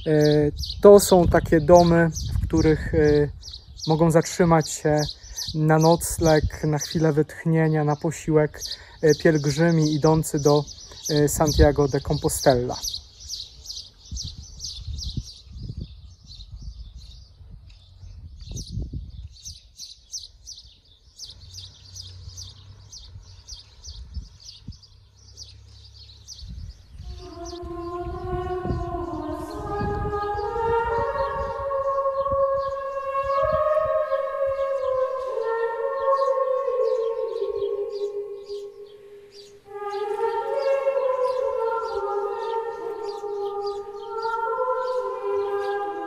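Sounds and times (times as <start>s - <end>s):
wind rumble on microphone: 0.0s - 7.2s, 9.2s - 20.5s, 21.3s - 42.0s
small birds chirping: 0.0s - 46.0s
slow sustained background chords: 27.0s - 46.0s.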